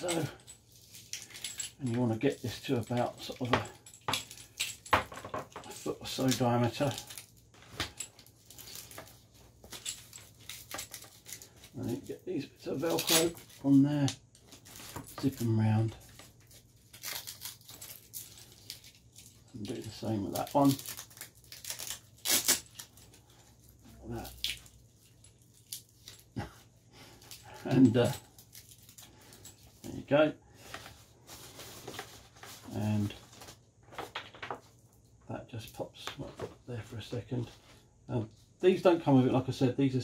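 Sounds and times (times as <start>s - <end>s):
cable rustling: 0.0s - 35.2s
velcro strap ripping: 12.8s - 13.5s, 16.5s - 18.8s, 20.2s - 23.0s.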